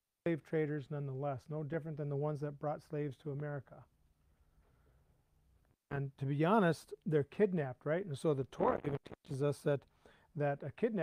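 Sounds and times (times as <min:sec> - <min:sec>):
man speaking: 0:00.3 - 0:03.9, 0:05.9 - 0:11.0.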